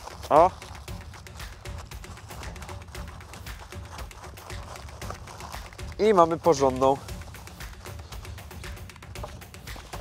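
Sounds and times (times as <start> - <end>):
aluminium foil crinkling: 0.0 - 10.0
background music with steady beat: 0.0 - 10.0.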